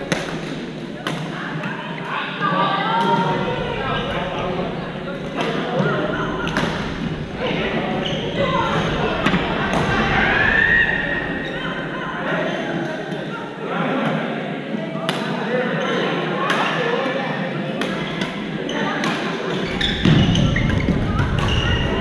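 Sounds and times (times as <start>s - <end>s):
voices in gym hall: 0.0s - 22.0s.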